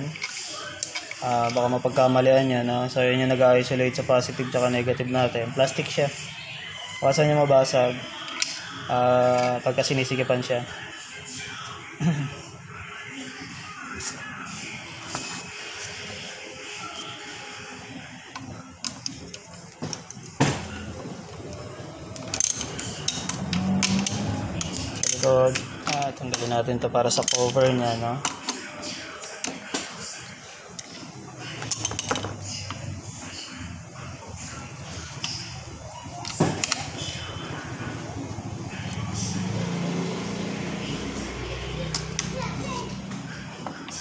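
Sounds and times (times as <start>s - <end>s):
metal clicks and rattles: 22.1s - 26.5s.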